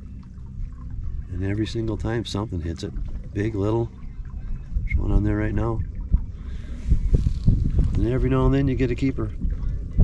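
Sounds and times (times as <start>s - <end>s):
wind buffeting microphone: 0.9s - 10.0s.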